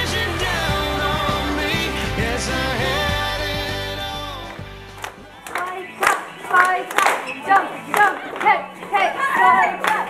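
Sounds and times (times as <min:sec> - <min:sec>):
background music: 0:00.0 - 0:10.0
voices: 0:00.0 - 0:10.0
people clapping in a steady beat: 0:04.5 - 0:10.0.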